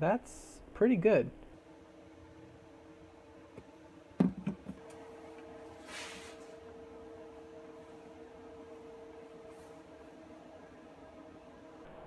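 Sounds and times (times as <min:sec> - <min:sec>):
electric heater humming: 0:00.0 - 0:12.0.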